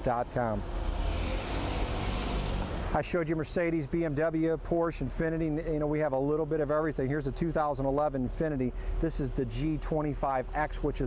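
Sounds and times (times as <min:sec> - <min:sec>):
vehicle driving by: 0:00.0 - 0:03.4.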